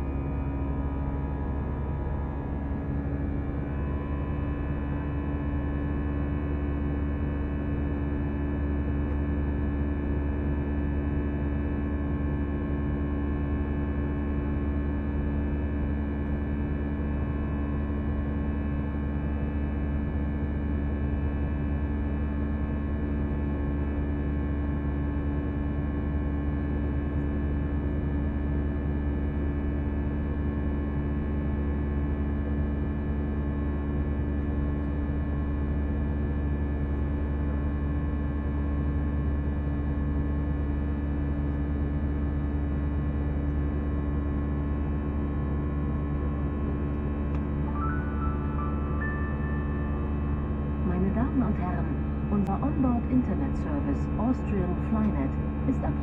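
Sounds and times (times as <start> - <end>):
jet engines droning in cabin: 0.0 - 56.0.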